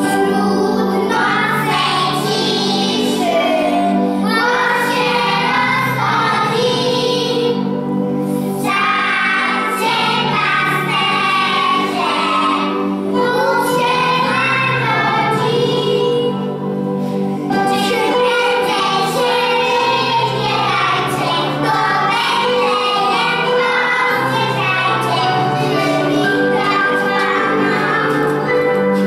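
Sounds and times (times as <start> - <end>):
children singing: 0.0 - 29.0
instrumental backing music: 0.0 - 29.0.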